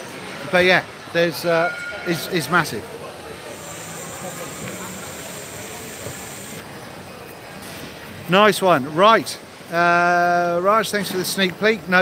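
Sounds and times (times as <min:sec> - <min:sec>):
faint distant voices: 0:00.0 - 0:09.6.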